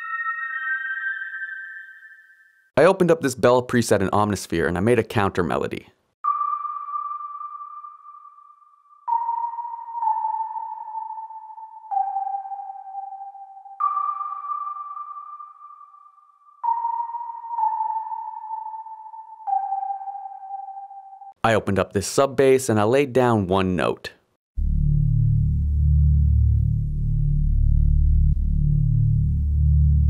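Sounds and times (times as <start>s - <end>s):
synth bell melody: 0.0s - 2.7s, 6.2s - 21.4s.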